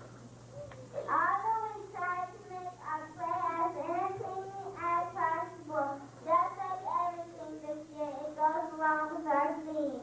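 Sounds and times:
child singing into microphone: 1.0s - 10.0s.

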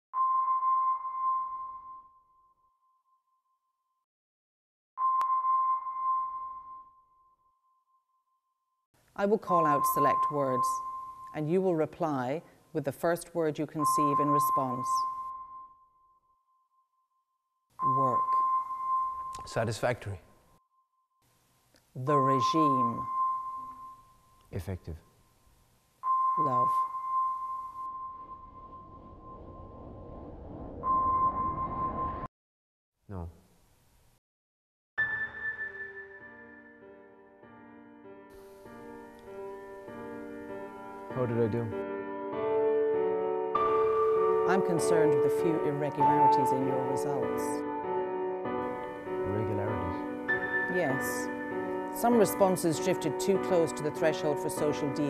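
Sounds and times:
steady electronic tone: 26.0s - 32.3s
low rumbling drone: 27.9s - 32.3s.

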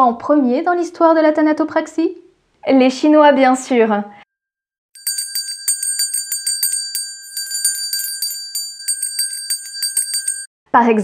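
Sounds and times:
small bell ringing rapidly: 5.0s - 10.5s.

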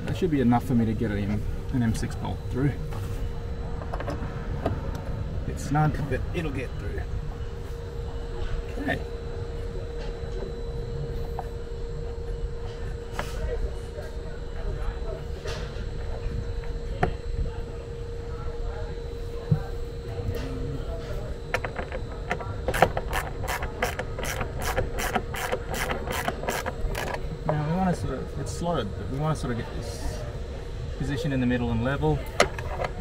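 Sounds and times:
steady low hum: 0.0s - 33.0s
ratchet tool clicking: 22.7s - 27.2s.

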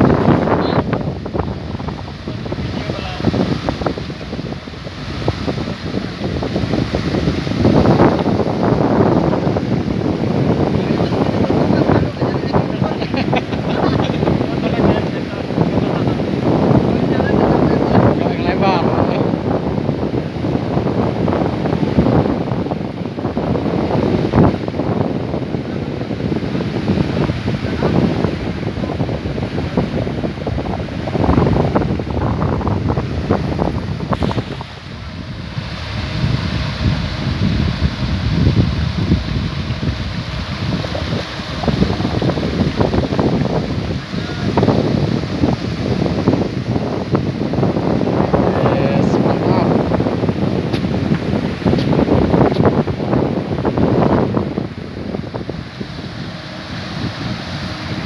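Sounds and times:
wind buffeting microphone: 0.0s - 58.0s
people talking: 0.2s - 0.9s, 2.6s - 3.4s, 10.7s - 16.3s, 16.9s - 19.3s, 43.9s - 44.7s, 48.4s - 49.8s.

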